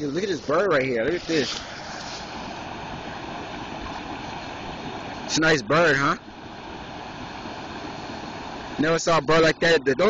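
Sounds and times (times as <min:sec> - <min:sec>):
water rushing over rapids: 0:00.0 - 0:10.0.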